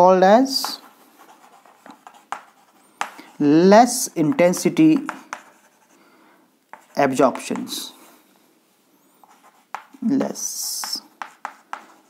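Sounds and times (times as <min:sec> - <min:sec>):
chalk scratching on chalkboard: 0:00.5 - 0:03.4, 0:04.2 - 0:06.0, 0:06.7 - 0:07.8, 0:09.2 - 0:12.0.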